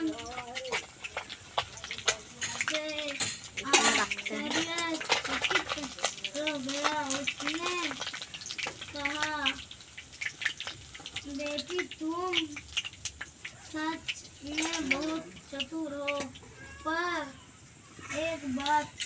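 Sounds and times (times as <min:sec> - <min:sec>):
fish frying in oil: 0:00.0 - 0:19.0
metal spatula scraping a pan: 0:00.7 - 0:06.0.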